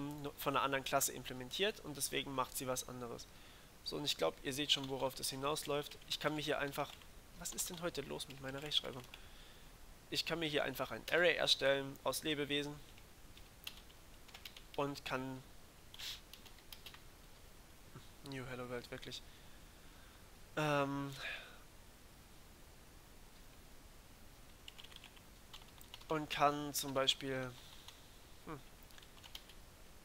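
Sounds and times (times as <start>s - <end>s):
short hiss: 16.0s - 16.3s
computer keyboard keystrokes: 16.3s - 17.0s, 24.7s - 26.1s, 28.9s - 29.6s.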